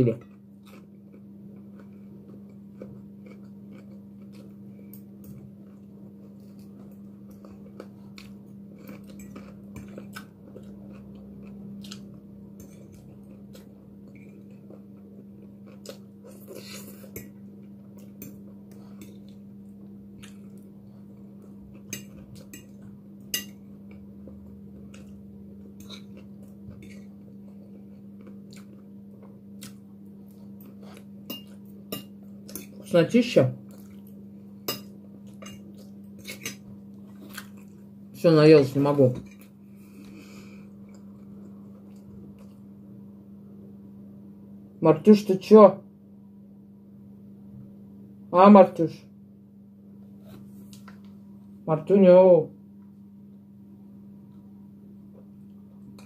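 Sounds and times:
person chewing food: 0.2 - 32.8, 33.6 - 38.0, 39.2 - 42.8.

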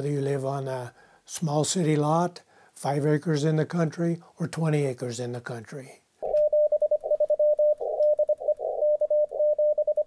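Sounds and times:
morse code tone: 6.3 - 10.0.

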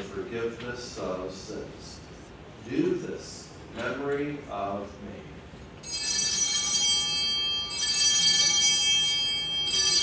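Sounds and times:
small bells ringing: 5.8 - 10.0.

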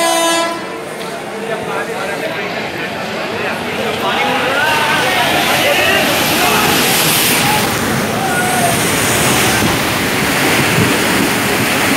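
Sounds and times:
train horn blast: 0.0 - 0.8
voices on a platform: 0.5 - 10.0.

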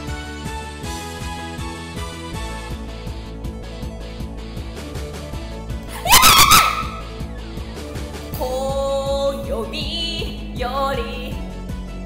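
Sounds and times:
woman shouting high-pitched: 5.9 - 7.0
pop karaoke backing track: 7.8 - 12.0.

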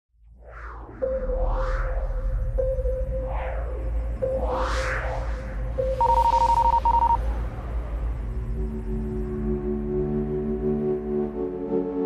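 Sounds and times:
deep drone: 0.4 - 12.0
low steady tone: 0.9 - 10.4
high fluttering beep: 4.2 - 7.3.

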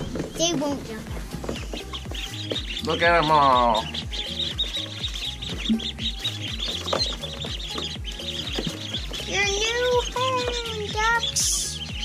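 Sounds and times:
ducklings peeping: 0.0 - 12.0
music with bass beat: 1.0 - 12.0.

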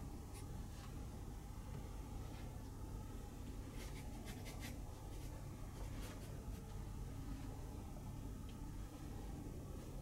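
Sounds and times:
low hum: 0.0 - 10.0
soft scratchy rustles: 3.4 - 7.7.

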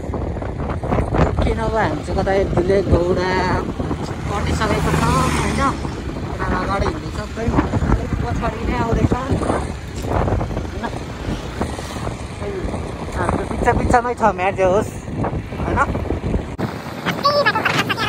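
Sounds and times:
motorcycle engine running: 0.0 - 17.0
wind rumble on microphone: 0.0 - 18.0
people talking loudly: 1.1 - 16.0, 17.1 - 18.0.

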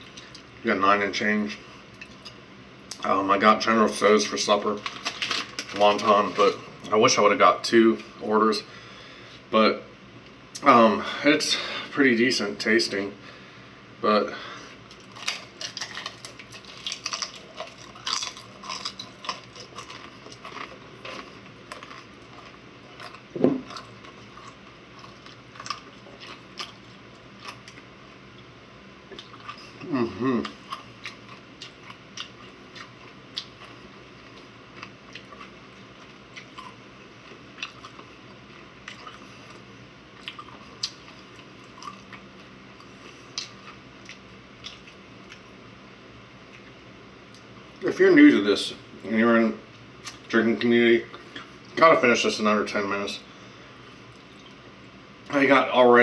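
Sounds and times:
person chewing crunchy food: 14.8 - 28.5, 29.1 - 45.6
low mouth sounds: 29.6 - 30.7.

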